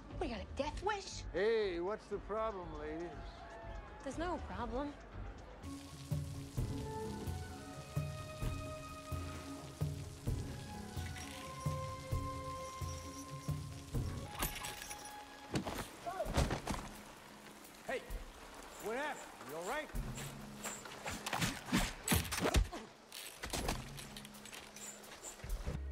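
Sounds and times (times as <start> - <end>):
rain hiss: 5.6 - 21.7, 23.1 - 25.8.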